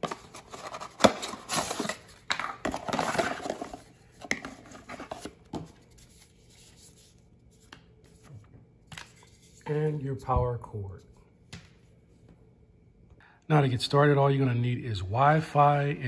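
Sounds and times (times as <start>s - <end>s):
cardboard and paper rustling: 0.0s - 8.3s.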